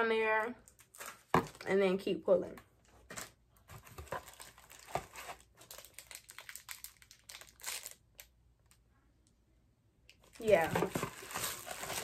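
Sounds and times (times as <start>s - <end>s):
packaging crinkling and rustling: 0.6s - 1.6s, 3.0s - 8.8s, 10.2s - 12.0s.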